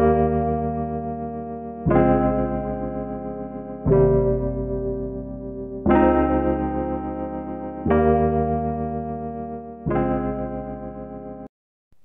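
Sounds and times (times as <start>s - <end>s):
electric piano chords: 0.0s - 11.5s.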